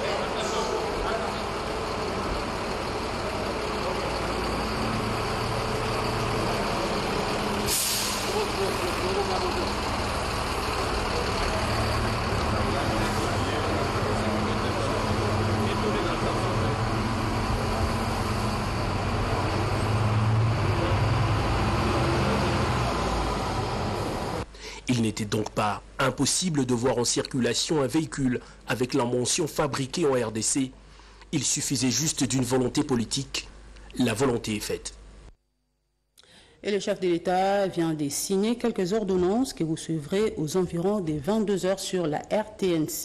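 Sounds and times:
bus engine humming: 0.0 - 24.5
compressed air hiss: 7.7 - 8.4.

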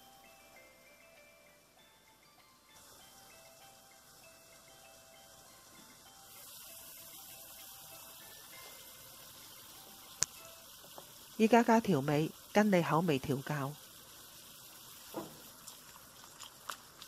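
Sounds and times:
soft background music: 0.0 - 13.5
sauce simmering hiss: 2.7 - 17.0.

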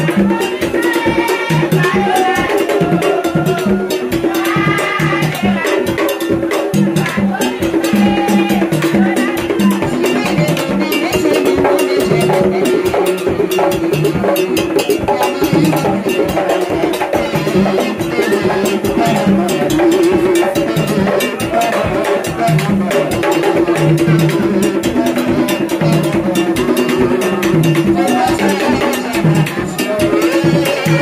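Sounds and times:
fast drum and percussion rhythm: 0.0 - 31.0
voices singing: 0.0 - 31.0.

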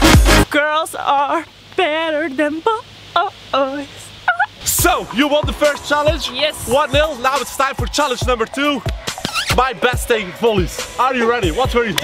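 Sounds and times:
woman speaking: 0.5 - 4.6, 6.2 - 6.9.

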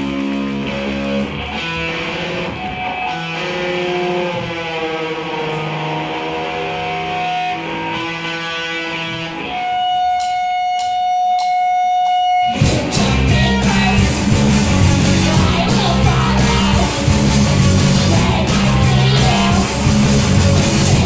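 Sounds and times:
electric guitars ringing: 0.0 - 21.0
full rock band playing: 0.0 - 21.0.

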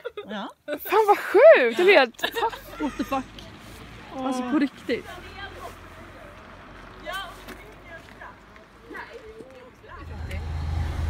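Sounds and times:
vehicle rumble inside car: 10.0 - 11.0.

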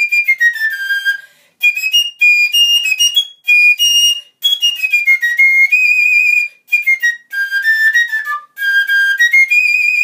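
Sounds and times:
fife playing shrill melody: 0.0 - 10.0.

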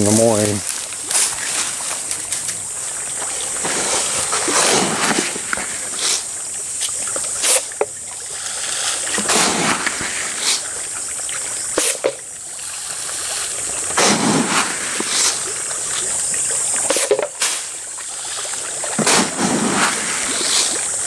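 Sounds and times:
fish splashing at water surface: 0.0 - 21.0
high-pitched background hiss: 0.0 - 21.0.

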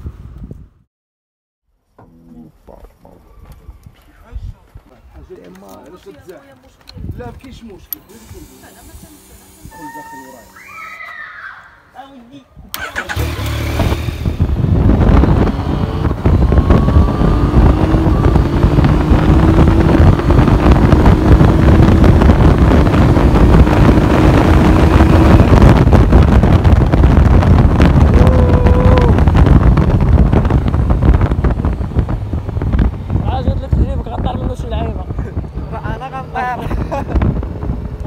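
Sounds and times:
wind noise on microphone: 0.0 - 0.9, 3.4 - 10.8, 12.5 - 38.0
motorcycle engine accelerating: 12.8 - 38.0.

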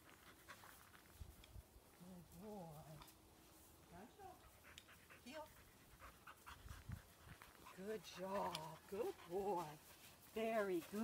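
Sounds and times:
dog panting: 4.2 - 11.0.

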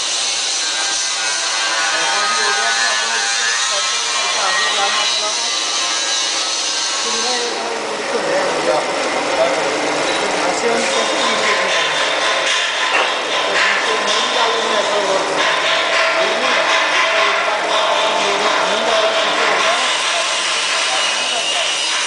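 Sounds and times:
machinery running with whine: 0.0 - 22.0
indistinct voices: 1.7 - 6.4.

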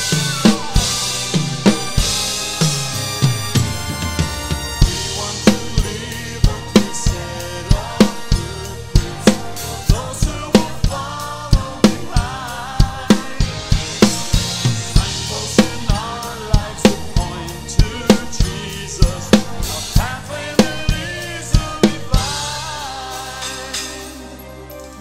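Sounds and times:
drum kit playing steady beat: 0.0 - 25.0
recorded song playing: 0.0 - 25.0.

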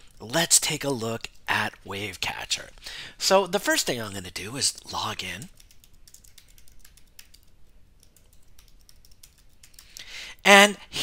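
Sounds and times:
faint keyboard keystrokes: 5.5 - 10.0.

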